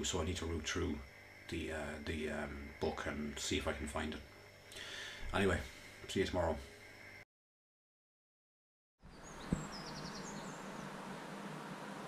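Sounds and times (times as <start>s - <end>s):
steady low hum: 0.0s - 7.2s, 9.1s - 12.0s
small birds chirping: 9.0s - 11.4s
low thump: 9.4s - 9.9s.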